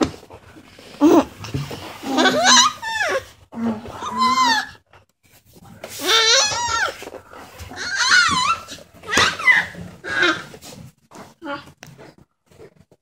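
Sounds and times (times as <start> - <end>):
baby squealing and laughing: 7.8 - 10.5.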